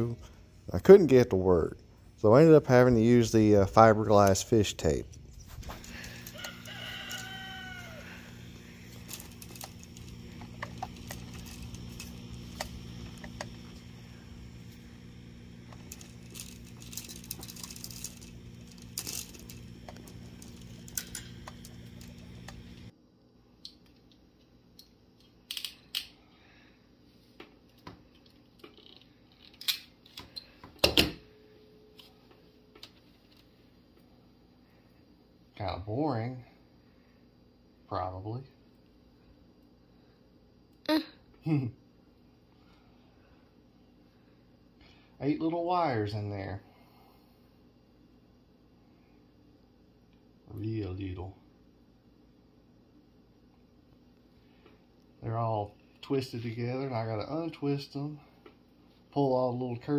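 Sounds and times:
steady low hum: 0.0s - 59.9s
handling sounds: 4.0s - 22.9s
rooster crowing: 5.8s - 9.5s.

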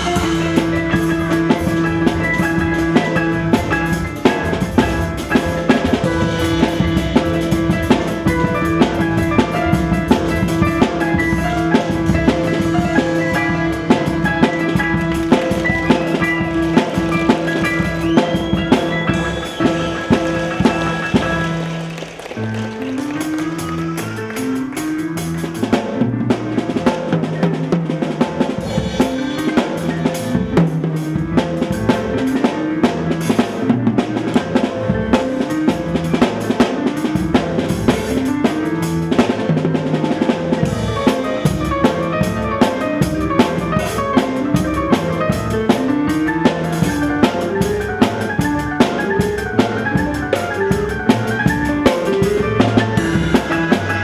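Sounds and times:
drum kit beat: 0.0s - 54.0s.

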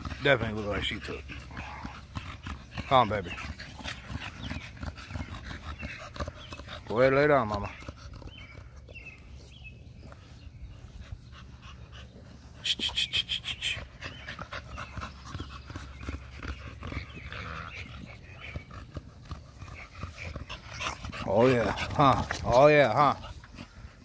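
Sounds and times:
dog panting: 0.0s - 24.0s.

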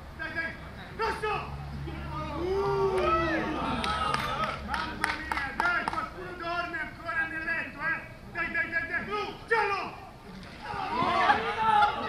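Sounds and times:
men calling and chatting: 0.0s - 12.0s.

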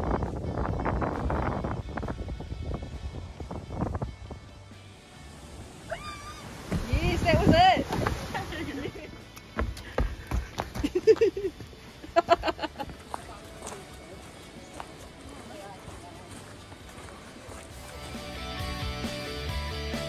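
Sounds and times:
background guitar music: 0.0s - 10.0s, 11.0s - 20.0s
footsteps on wooden boardwalk: 6.5s - 8.5s, 9.4s - 18.2s.

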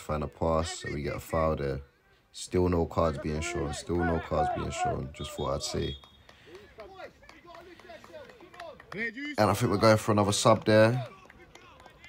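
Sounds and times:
distant men shouting: 3.1s - 5.7s.

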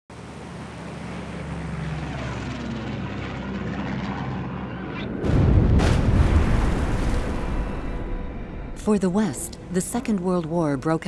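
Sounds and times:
propeller aircraft engines droning: 0.1s - 5.4s, 7.6s - 11.0s
deep explosion rumble: 5.2s - 8.8s.

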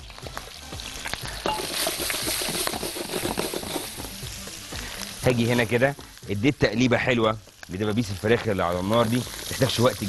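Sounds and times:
chicken sizzling in hot oil: 0.0s - 10.0s.

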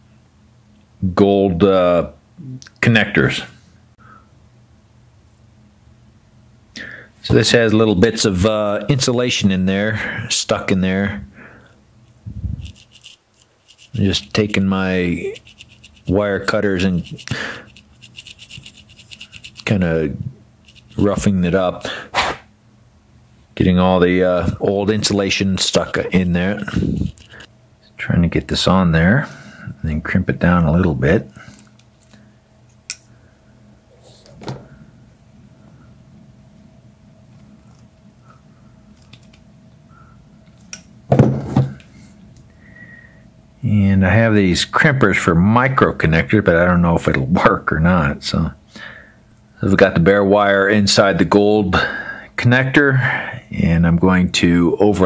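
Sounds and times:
faint steady hum: 0.0s - 55.0s
wire cutters scraping metal connector: 15.2s - 19.8s, 20.7s - 21.1s.

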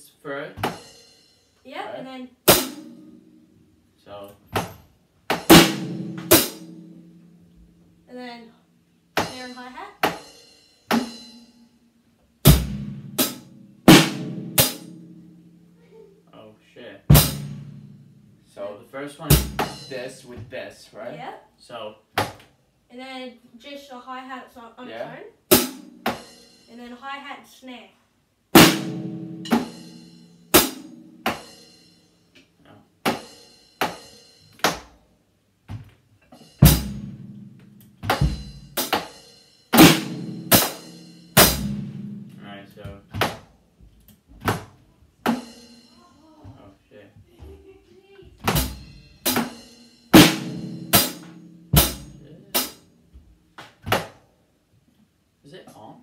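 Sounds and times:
bass drum strokes: 5.4s - 7.8s, 17.1s - 18.5s, 28.6s - 31.5s, 36.4s - 38.9s, 39.8s - 43.2s, 48.3s - 53.1s
snare drum strokes: 38.0s - 42.3s, 48.5s - 52.8s.

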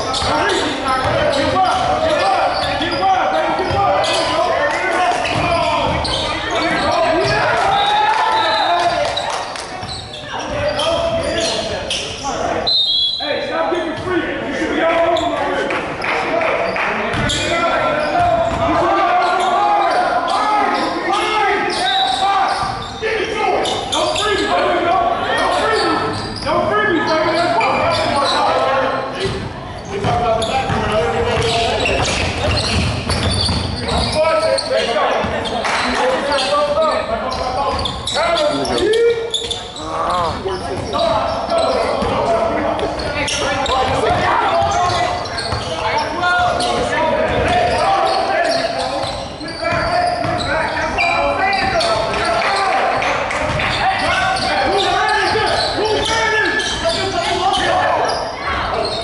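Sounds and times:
players calling out: 0.0s - 59.0s.

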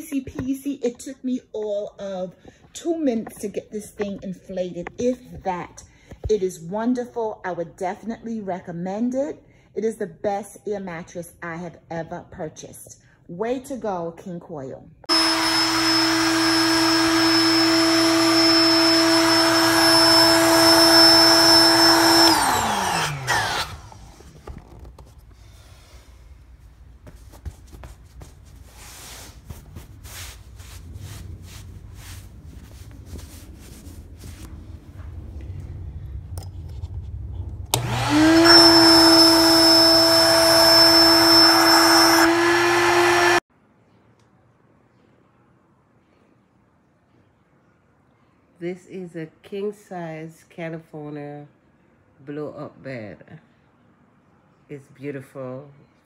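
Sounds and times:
electric air pump whining: 15.1s - 24.9s, 37.7s - 43.4s.

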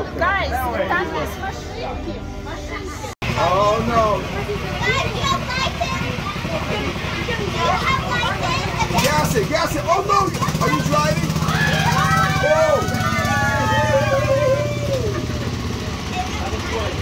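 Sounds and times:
small car engine running: 3.2s - 17.0s
children's voices: 4.2s - 17.0s.

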